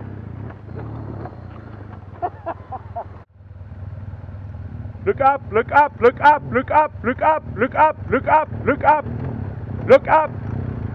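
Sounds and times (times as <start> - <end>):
motorcycle engine idling: 0.0 - 10.9.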